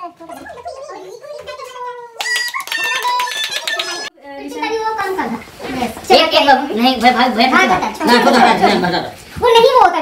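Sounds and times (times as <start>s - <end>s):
high-pitched wavering voices: 2.2s - 4.1s.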